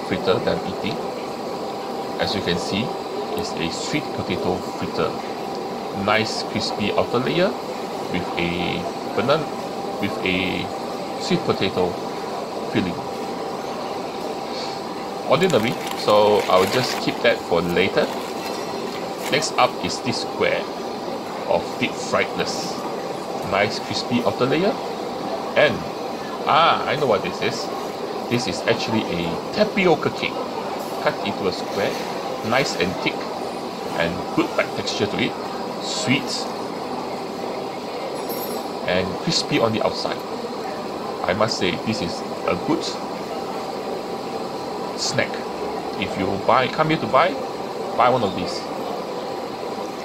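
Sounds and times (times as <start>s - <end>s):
faint even hum: 0.0s - 50.0s
man's voice: 6.0s - 12.0s, 15.3s - 18.2s.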